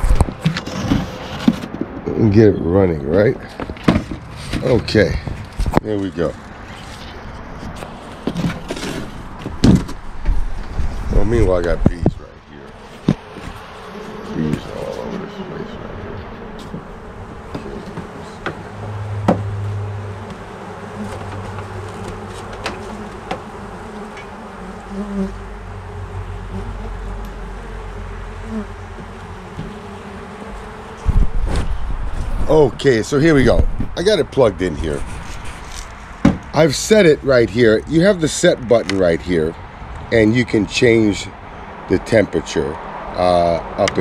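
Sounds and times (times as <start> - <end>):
honeybees buzzing: 0.0 - 2.7, 3.4 - 38.2
cardboard box knocks and rustling: 8.3 - 10.0
loud thump: 9.4 - 10.5, 19.2 - 19.6, 36.2 - 36.5.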